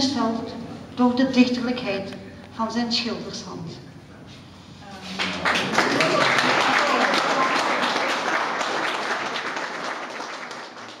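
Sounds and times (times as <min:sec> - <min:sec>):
audience applauding: 0:05.2 - 0:11.0.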